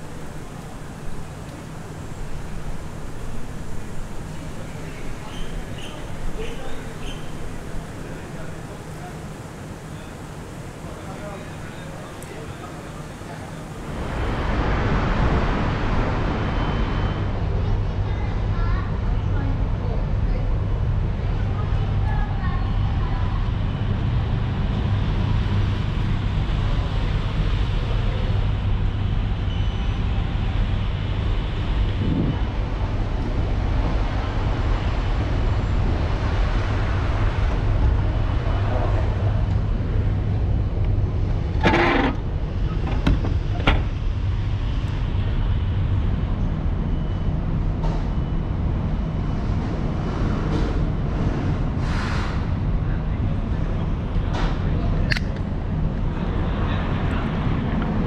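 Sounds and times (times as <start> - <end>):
low rumble of road traffic: 0.0 - 58.0.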